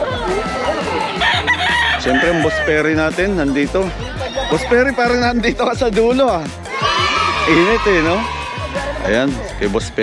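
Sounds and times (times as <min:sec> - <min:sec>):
roosters crowing: 0:00.0 - 0:02.9, 0:06.8 - 0:09.0.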